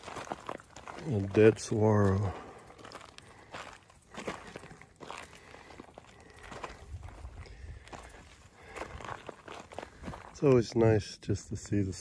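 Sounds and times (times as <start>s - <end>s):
footsteps on gravel: 0.0s - 10.9s.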